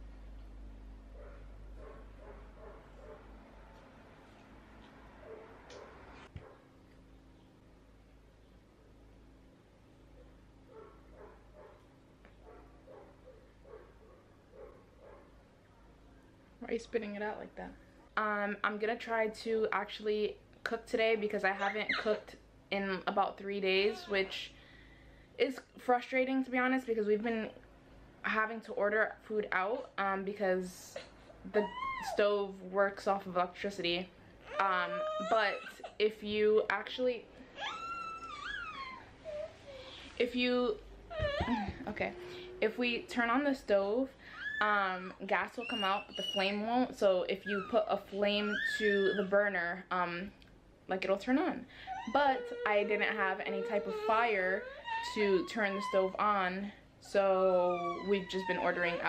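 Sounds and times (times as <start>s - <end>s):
toddler whining: 31.0s - 32.2s, 34.4s - 36.0s, 37.6s - 40.1s, 41.1s - 42.6s, 51.8s - 56.2s, 57.5s - 59.0s
soft whimpers: 37.5s - 40.2s, 41.1s - 43.0s, 51.7s - 56.1s.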